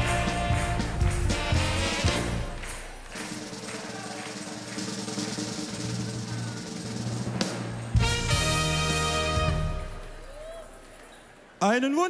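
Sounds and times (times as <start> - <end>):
live band music: 0.0 - 10.4.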